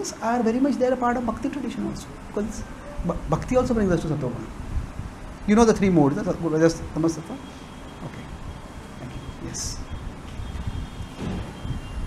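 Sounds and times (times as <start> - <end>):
fan air buffeting microphone: 0.0 - 12.0.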